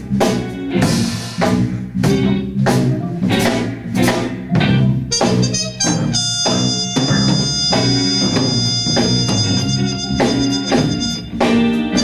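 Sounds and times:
drum kit hits: 0:00.0 - 0:12.0
electric bass: 0:00.0 - 0:12.0
keyboard chords: 0:00.0 - 0:12.0
trumpet: 0:05.1 - 0:12.0.

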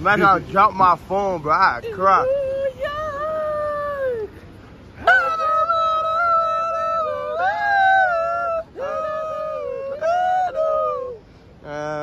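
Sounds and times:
man singing long notes: 0:05.0 - 0:12.0.

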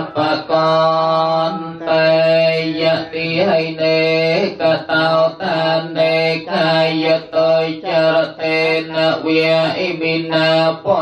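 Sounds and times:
men chanting on one pitch: 0:00.0 - 0:11.0.

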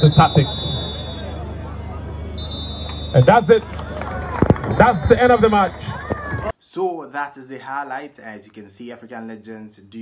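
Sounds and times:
referee's whistle long blasts: 0:00.0 - 0:03.5, 0:04.7 - 0:06.0
steady background noise: 0:00.0 - 0:10.0.

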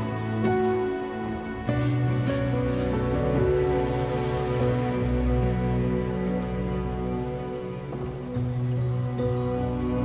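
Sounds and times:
calm music of sustained chords: 0:00.0 - 0:10.0.

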